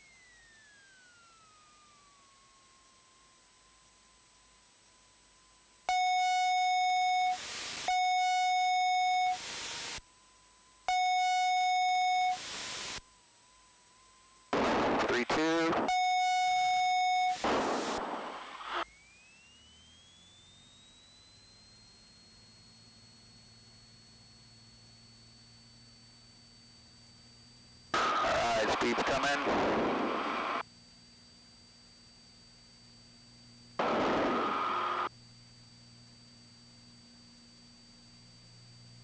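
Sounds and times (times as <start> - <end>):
buzzy electronic tones: 5.9 - 10.0, 10.9 - 12.9, 14.6 - 18.8, 28.0 - 30.6, 33.8 - 35.1
low hum: 28.0 - 30.6, 33.8 - 35.1.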